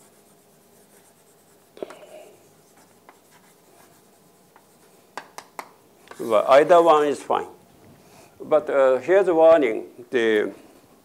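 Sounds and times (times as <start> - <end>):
chalk scratching on blackboard: 0.0 - 5.0
sharp chalk taps: 2.7 - 6.2.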